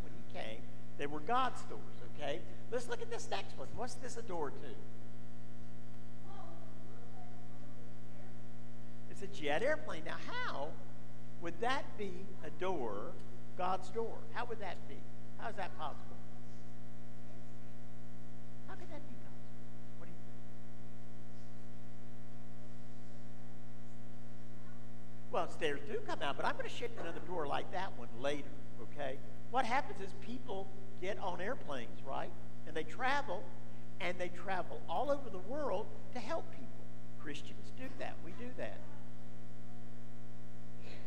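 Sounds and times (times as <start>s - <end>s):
low electrical mains hum: 0.0s - 41.0s.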